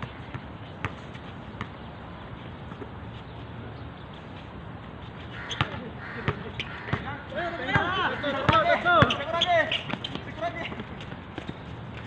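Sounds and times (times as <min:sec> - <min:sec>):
players calling out: 0:05.3 - 0:11.1
basketball bouncing on hard court: 0:07.7 - 0:11.6.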